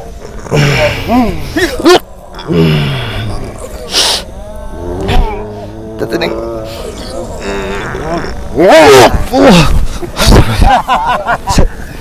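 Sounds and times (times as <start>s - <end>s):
roar-like growling cries: 0.0s - 10.2s.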